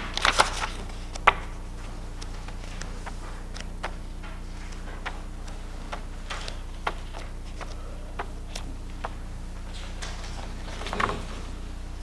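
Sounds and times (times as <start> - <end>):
paper pages rustling: 0.0 - 9.1
low electrical hum: 0.0 - 12.0.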